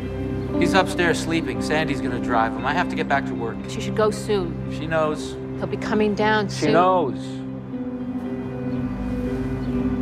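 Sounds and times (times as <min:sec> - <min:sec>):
soft background score: 0:00.0 - 0:10.0.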